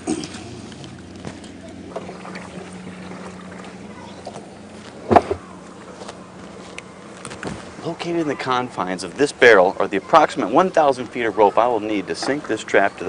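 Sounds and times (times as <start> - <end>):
low motor hum: 0.0 - 13.0.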